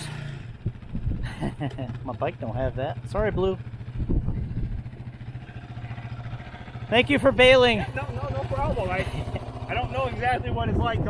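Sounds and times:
quad engine idling: 0:00.0 - 0:11.0.

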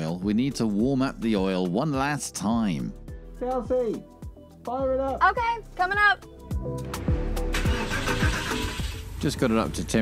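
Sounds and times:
background music: 0:00.0 - 0:10.0
car engine starting and running: 0:06.7 - 0:10.0.

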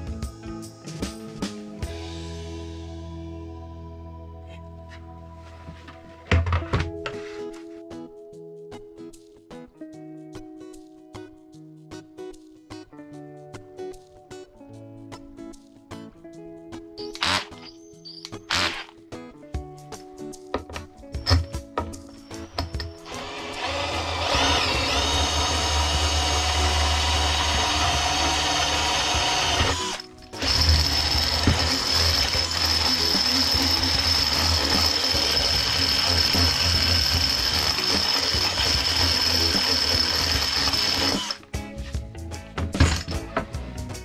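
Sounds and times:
cordless drill boring into wood: 0:17.1 - 0:18.9, 0:22.5 - 0:41.4.

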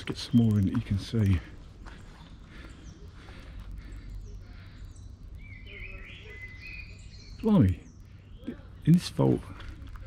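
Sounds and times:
bird warbling song: 0:00.0 - 0:09.8
low steady rumble: 0:00.0 - 0:10.0
small birds chirping: 0:00.0 - 0:10.0.

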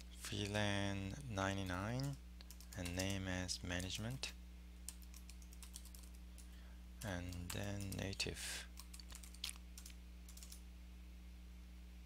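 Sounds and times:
low electrical hum: 0:00.0 - 0:12.0
computer keyboard typing: 0:01.7 - 0:03.2, 0:04.9 - 0:06.2, 0:07.0 - 0:08.2, 0:08.8 - 0:10.6.

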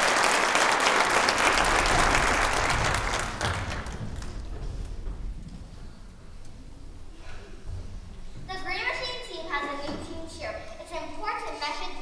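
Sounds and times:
audience applause: 0:00.0 - 0:04.5
low thuds: 0:01.7 - 0:08.5.

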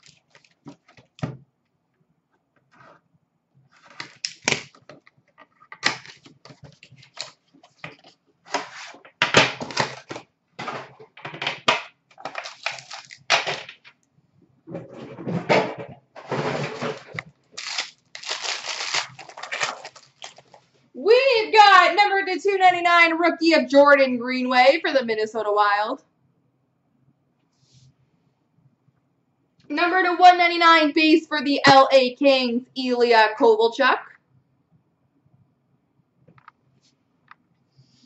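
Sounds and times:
packaging rustling and tearing: 0:12.1 - 0:13.4, 0:16.7 - 0:20.6.

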